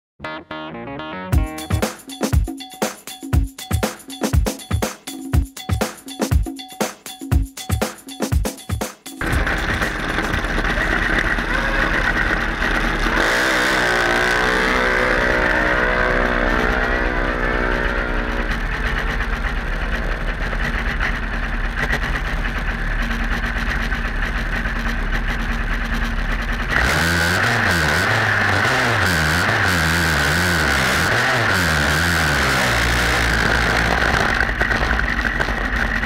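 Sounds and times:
rock music: 0:00.2 - 0:19.8
small engine idling: 0:09.2 - 0:36.0.

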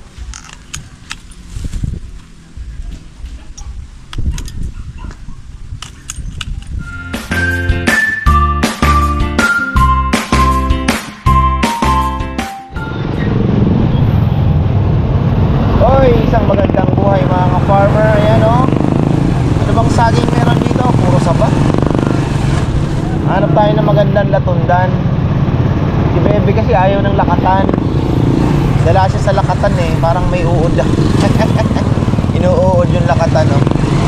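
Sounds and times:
motorcycle engine rumble: 0:00.0 - 0:06.9, 0:12.8 - 0:34.0
road and wind noise: 0:00.0 - 0:12.0, 0:12.7 - 0:34.0.

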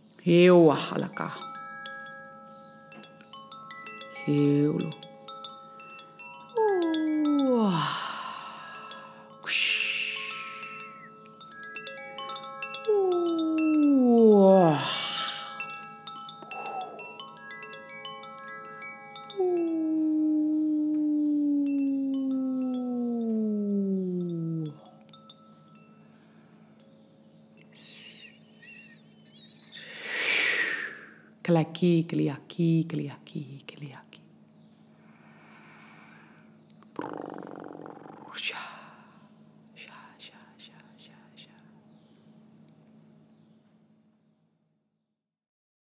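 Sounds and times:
chimes ringing: 0:01.2 - 0:20.1.

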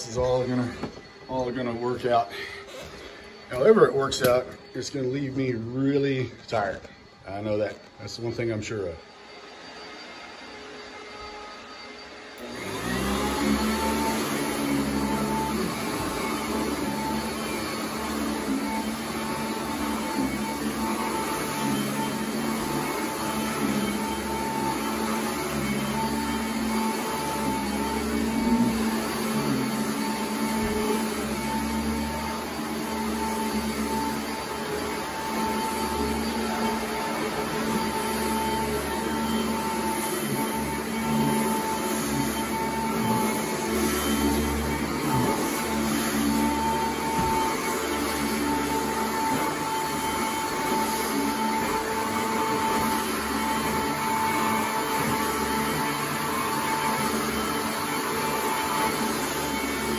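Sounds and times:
vacuum cleaner running: 0:00.0 - 0:59.9.

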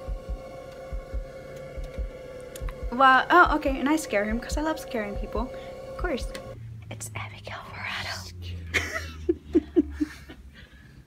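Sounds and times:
heartbeat thumps: 0:00.0 - 0:06.6
steady droning hum: 0:00.0 - 0:10.8.

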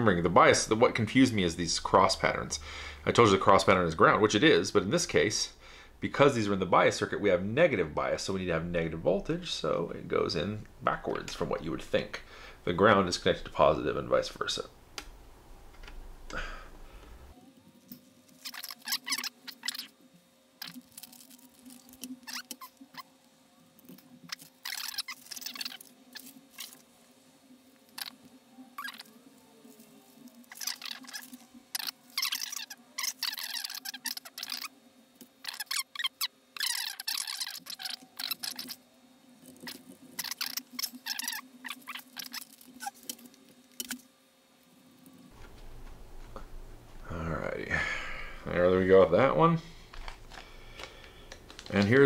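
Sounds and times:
faint steady hum: 0:00.0 - 0:52.0
plastic bags crinkling: 0:49.7 - 0:52.0.

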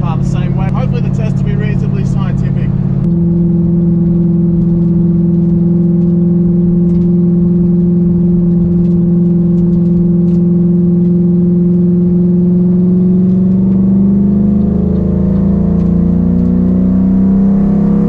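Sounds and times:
car engine droning from inside: 0:00.0 - 0:18.0.

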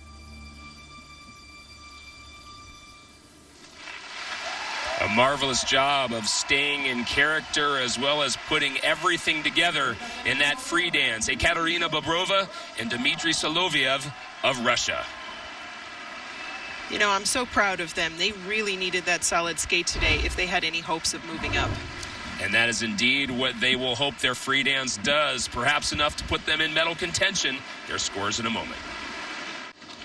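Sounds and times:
crowd applause: 0:03.8 - 0:30.0.

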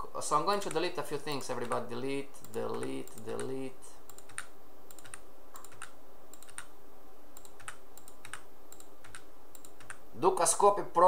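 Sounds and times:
mouse and keyboard clicks: 0:02.4 - 0:06.7.

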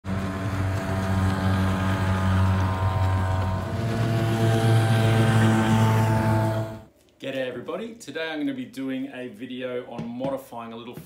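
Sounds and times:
outboard motor running: 0:00.0 - 0:06.9.

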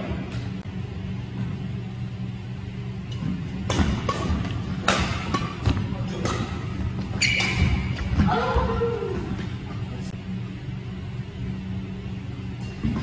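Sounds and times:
steady low hum: 0:00.0 - 0:13.0
rackets striking shuttlecock: 0:03.1 - 0:08.1.

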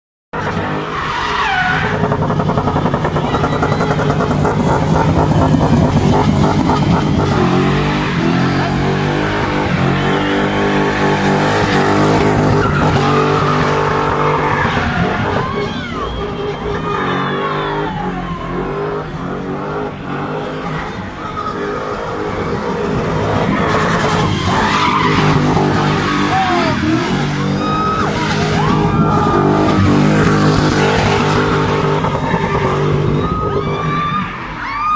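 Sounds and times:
car engine revving: 0:00.4 - 0:34.0
tyres squealing on tarmac: 0:00.4 - 0:34.9.

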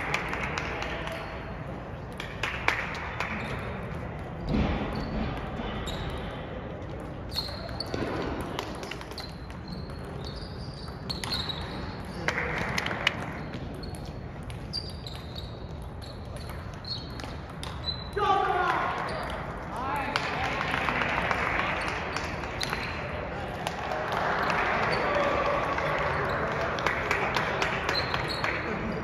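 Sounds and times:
ping-pong ball ticking off paddles: 0:06.9 - 0:18.2.

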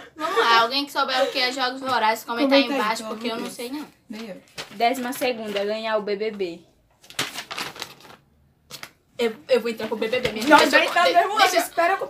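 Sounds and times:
paper rustling: 0:03.0 - 0:09.0, 0:09.7 - 0:11.8.

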